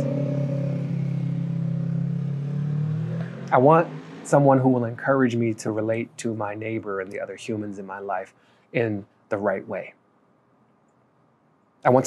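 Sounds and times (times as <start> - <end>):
vehicle engine humming: 0.0 - 8.2.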